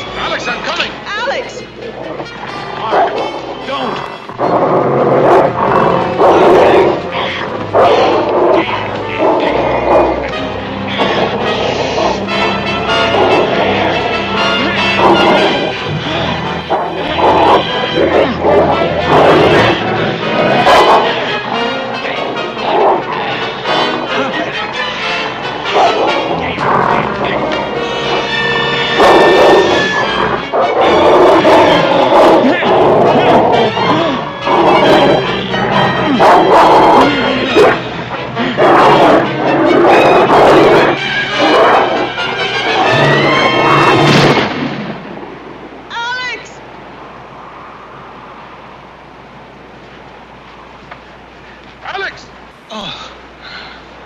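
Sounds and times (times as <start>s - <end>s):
wolves snarling: 1.8s - 44.6s
dramatic film score: 3.6s - 45.2s.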